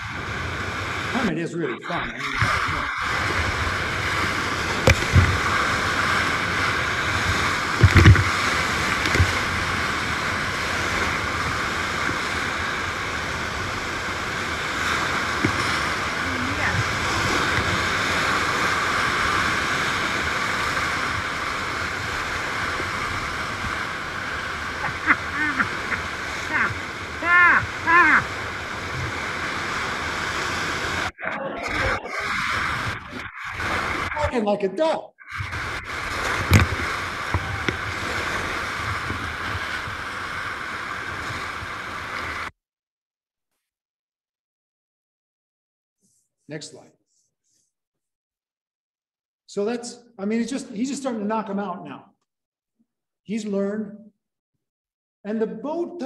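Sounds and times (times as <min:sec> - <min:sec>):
waves thumping raft: 0:00.0 - 0:42.5
whitewater rushing and crashing: 0:00.0 - 0:42.5
people shouting: 0:24.8 - 0:28.5, 0:37.3 - 0:37.8.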